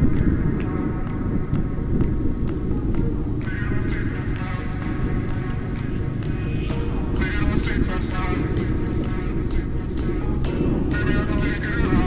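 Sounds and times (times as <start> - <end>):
faint music with a beat: 0.0 - 12.0
motorcycle engine: 0.0 - 12.0
wind rushing on microphone: 0.0 - 12.0.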